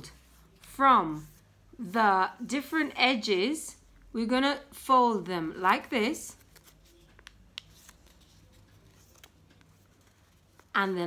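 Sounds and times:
origami paper being folded: 6.4 - 10.8.

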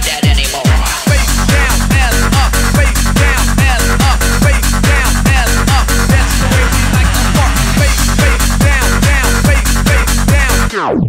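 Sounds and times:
electronic house dance music: 0.0 - 11.0
steady kick drum: 0.2 - 10.5
falling synth stabs: 6.0 - 8.6.

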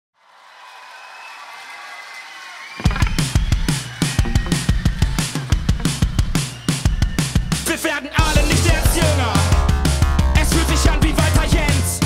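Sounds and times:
drum beat with bass: 2.8 - 12.0
synthesizer chord: 8.2 - 12.0.

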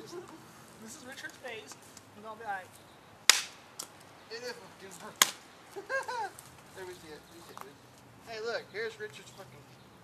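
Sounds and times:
wooden stick striking tree trunk: 3.2 - 4.0, 5.1 - 5.4.

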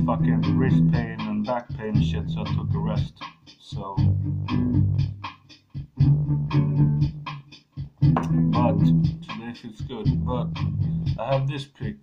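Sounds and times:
electric guitar low notes: 6.0 - 7.2, 8.0 - 9.2.

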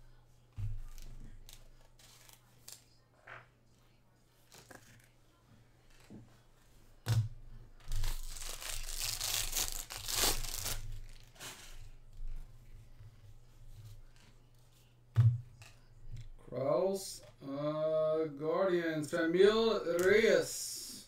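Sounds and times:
scissors cutting foil: 7.9 - 11.6
foil wrapper crinkling: 7.9 - 11.7.

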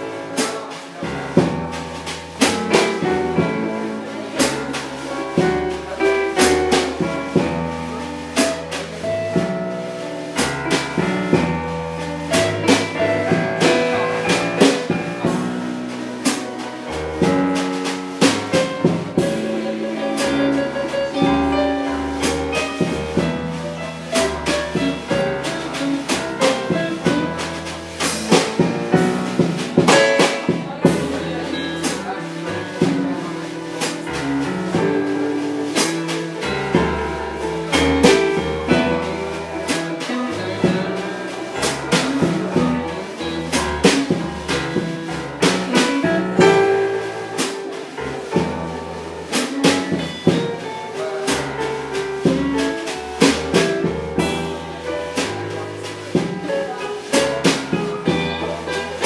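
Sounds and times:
blues band playing: 0.0 - 59.0
drums striking: 0.0 - 59.0
walking bass line: 0.0 - 59.0.

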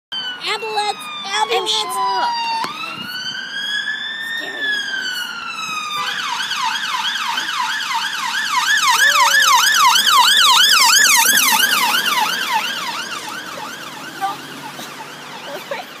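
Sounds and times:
electronic siren wailing and yelping: 0.2 - 16.0.

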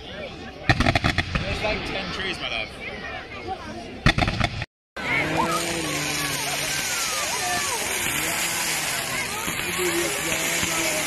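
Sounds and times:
crowd chattering: 0.0 - 11.0
steady hiss: 5.4 - 11.0.

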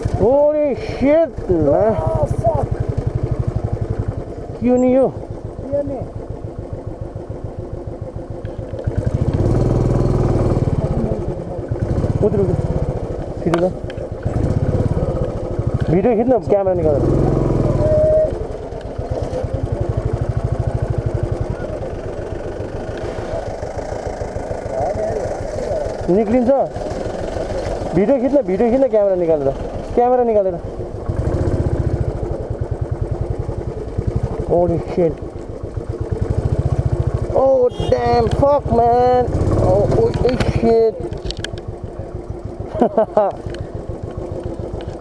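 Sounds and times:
motorcycle engine running: 0.0 - 45.0.

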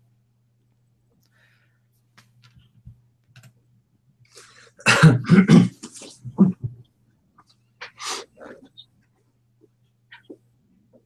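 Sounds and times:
faint electrical hum: 0.0 - 11.0
person coughing: 4.8 - 6.7.

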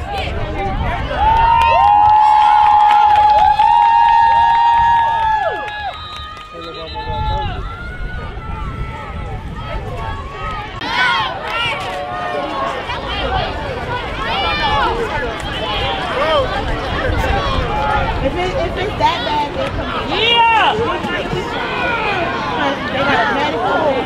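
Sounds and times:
crowd voices: 0.0 - 24.0
spectators shouting: 0.0 - 24.0.

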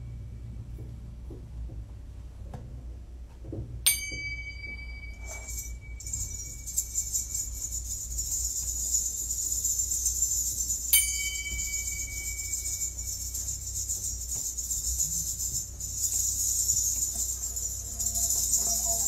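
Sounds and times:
low hum: 0.0 - 19.0
cymbals played softly: 3.8 - 19.0
sharp cymbal stroke ringing: 3.9 - 19.0.

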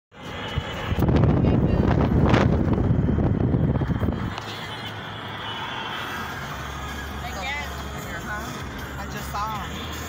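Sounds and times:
car engine hum inside cabin: 0.1 - 10.0.

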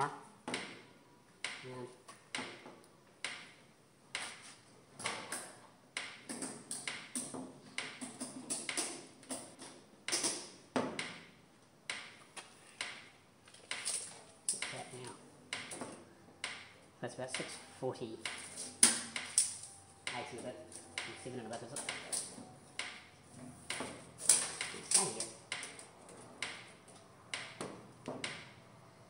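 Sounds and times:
sharp clicks and metallic taps: 1.4 - 4.4, 5.0 - 11.3, 11.9 - 17.6, 18.2 - 23.1, 23.7 - 28.6.

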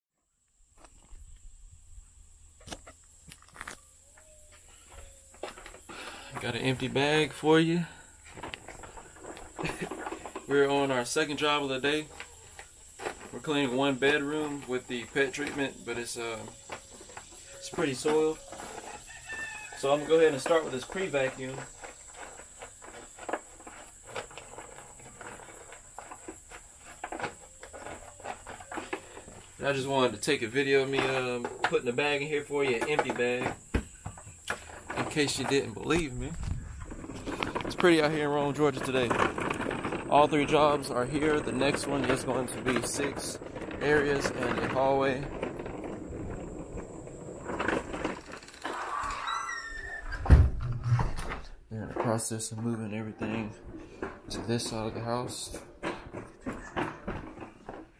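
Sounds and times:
rustling and knocking handling noise: 2.6 - 48.8, 53.3 - 57.9
vacuum cleaner wheeled over pavement: 2.6 - 49.9, 50.6 - 57.9
high squeak: 48.6 - 50.3.

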